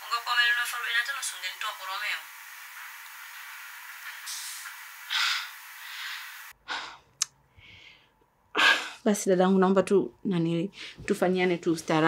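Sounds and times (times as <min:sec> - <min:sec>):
steady hiss: 0:00.0 - 0:06.6.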